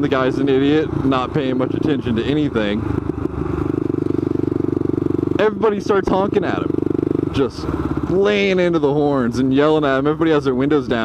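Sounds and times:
motorcycle engine cruising: 0:00.0 - 0:11.0.

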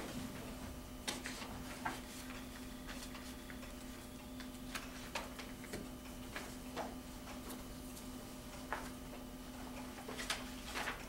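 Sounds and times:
steady hum: 0:00.0 - 0:11.0
paper rustling and pen clicks: 0:09.7 - 0:11.0.

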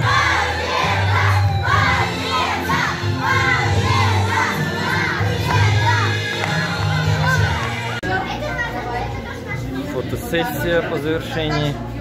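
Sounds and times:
loud dance music: 0:00.0 - 0:08.1
children shouting and cheering: 0:00.0 - 0:09.7.

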